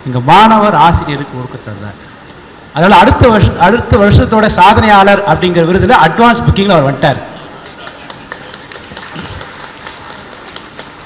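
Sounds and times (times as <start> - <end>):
audience background noise: 7.4 - 11.0
light clapping: 7.6 - 11.0.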